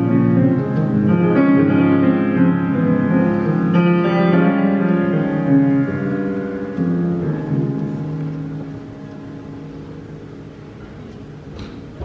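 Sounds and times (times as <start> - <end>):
piano chord ringing: 0.0 - 12.0.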